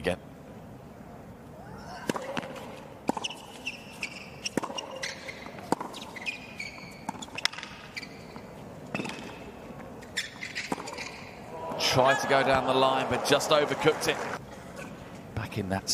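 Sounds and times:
shoes squeaking on court: 1.9 - 11.4
racket striking tennis ball: 2.0 - 11.9.

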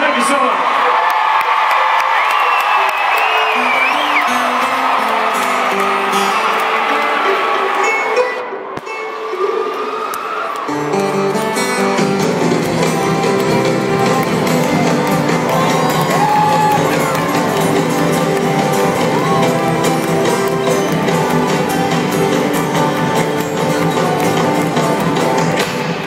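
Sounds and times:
crowd cheering and whistling: 0.0 - 11.6, 12.7 - 26.0
band playing: 1.8 - 10.0, 10.7 - 26.0
guitar picking a melody: 3.6 - 9.1, 10.7 - 25.9.

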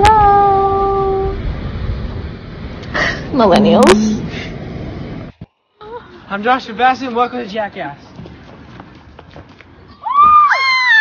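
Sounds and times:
street background noise: 0.0 - 11.0
running footsteps on pavement: 7.0 - 10.5.

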